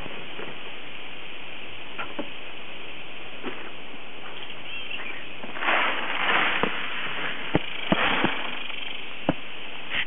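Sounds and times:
water splashing: 5.4s - 9.3s.

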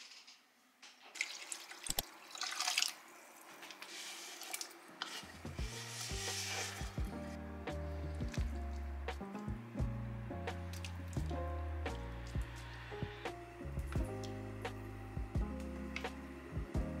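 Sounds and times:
potatoes sliding off cutting board: 3.8s - 7.0s
background music: 5.2s - 17.0s.

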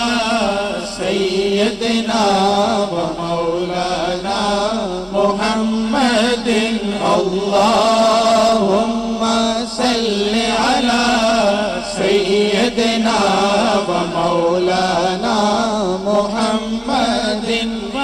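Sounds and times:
male chorus humming drone: 0.0s - 18.0s
man singing devotional melody: 0.0s - 18.0s.

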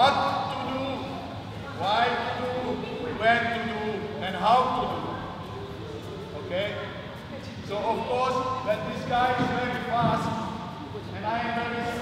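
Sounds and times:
people talking with echo: 0.0s - 12.0s.

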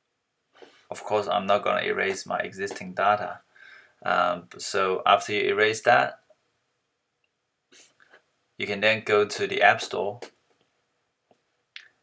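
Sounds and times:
soft breath: 0.6s - 0.9s, 3.5s - 4.0s
person speaking: 0.6s - 6.2s, 8.6s - 10.3s.

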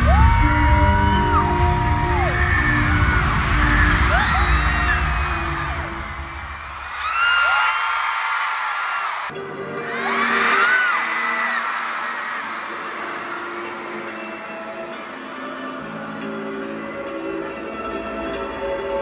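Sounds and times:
pop music over sound system: 0.0s - 7.7s, 9.3s - 19.0s
crowd screaming: 0.0s - 18.5s.

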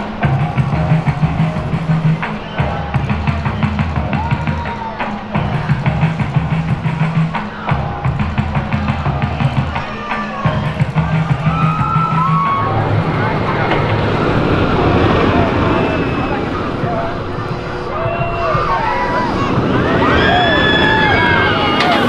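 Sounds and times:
background music with beat and bass: 0.0s - 22.0s
riders' voices: 0.0s - 22.0s
roller coaster rushing noise: 0.0s - 22.0s.

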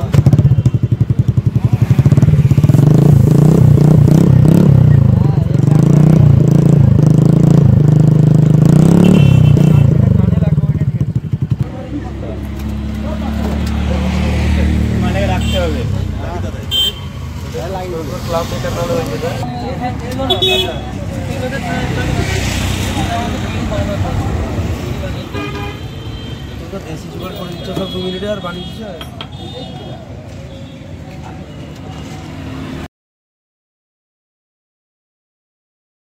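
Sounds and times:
scooter engine revving and idling: 0.0s - 25.4s.

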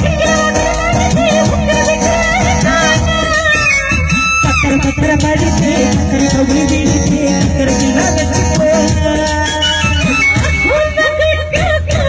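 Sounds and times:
live band playing instrumental: 0.0s - 12.0s.

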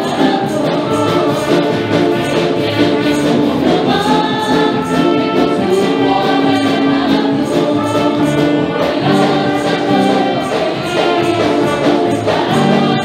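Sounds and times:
instrumental accompaniment with beat: 0.0s - 13.0s
women singing worship song: 0.0s - 13.0s.

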